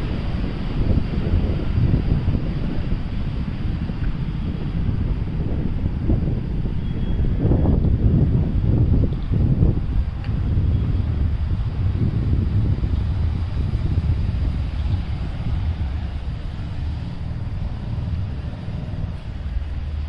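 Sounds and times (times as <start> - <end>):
wind buffeting microphone: 0.0 - 20.0.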